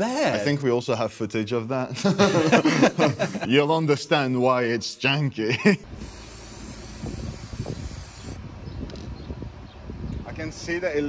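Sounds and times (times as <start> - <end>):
spray paint can hissing: 5.9 - 8.4.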